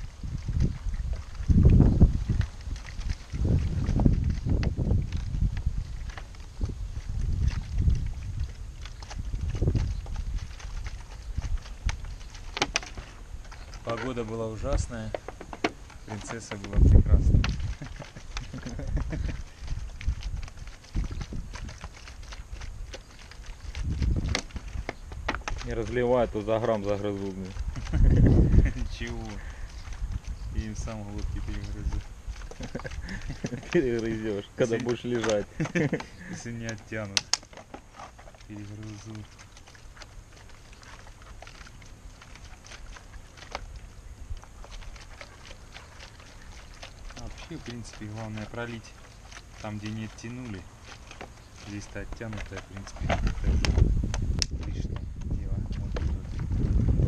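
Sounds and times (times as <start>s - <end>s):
steady low rumble: 0.0s - 36.9s, 38.4s - 57.0s
plastic clicks and ticks: 32.6s - 37.7s.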